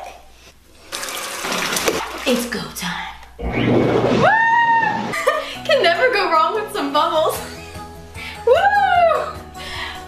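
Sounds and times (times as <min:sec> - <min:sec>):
water pouring into bathtub: 0:00.8 - 0:02.8.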